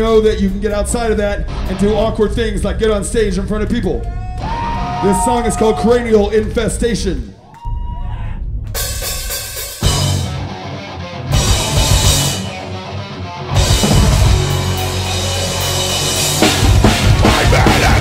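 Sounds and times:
live metal band playing: 0:00.0 - 0:03.7, 0:08.8 - 0:18.0
bass drum and cymbals pounding: 0:07.8 - 0:10.4, 0:11.4 - 0:12.7, 0:13.6 - 0:18.0.

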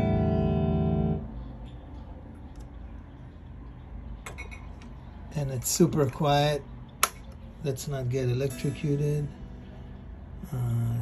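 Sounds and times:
electric guitar chord ringing: 0:00.0 - 0:01.4
amp hum and hiss: 0:04.8 - 0:11.0.

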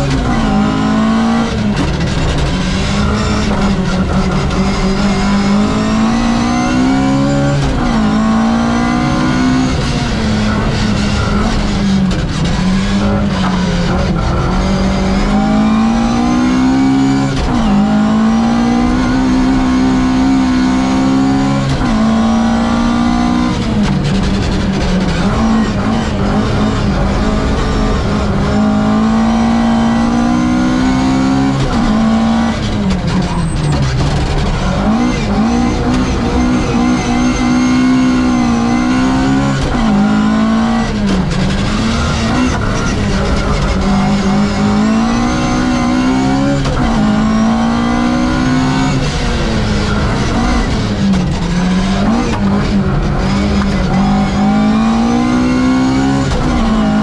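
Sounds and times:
car engine revving through gears: 0:00.0 - 0:57.0.

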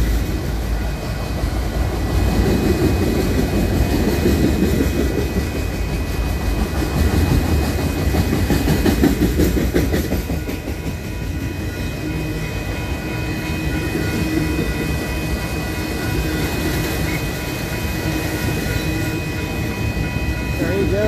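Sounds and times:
freight train rolling past: 0:00.0 - 0:21.0
wheels clicking and clattering: 0:03.5 - 0:11.0.

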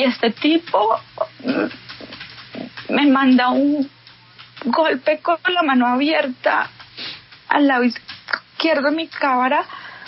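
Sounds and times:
woman breathing: 0:09.7 - 0:10.0.

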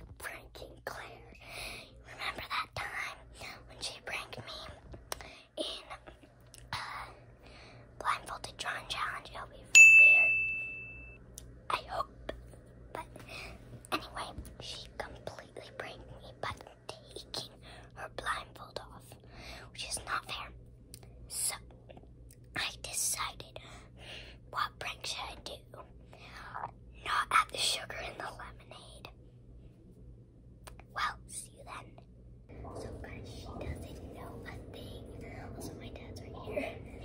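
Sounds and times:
girl whispering: 0:00.0 - 0:07.2, 0:08.0 - 0:09.7, 0:11.7 - 0:20.6, 0:22.5 - 0:23.8, 0:24.5 - 0:29.2, 0:30.7 - 0:37.0
bright ding: 0:09.8 - 0:11.2.

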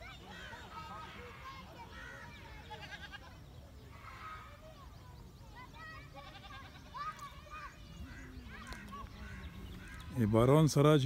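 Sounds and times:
quavering animal call: 0:07.6 - 0:10.3.

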